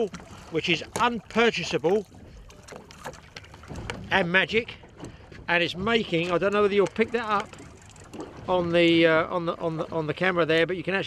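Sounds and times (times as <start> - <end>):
water: 0.0 - 11.0.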